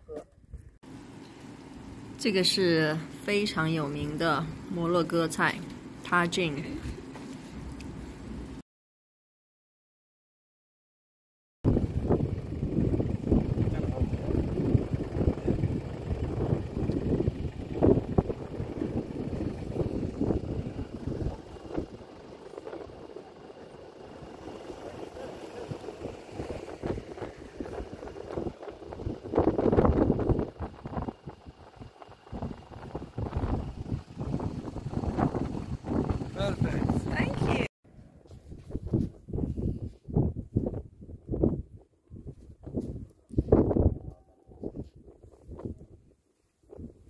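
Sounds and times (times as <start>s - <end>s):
wind buffeting microphone: 11.7s - 37.7s, 38.3s - 47.0s.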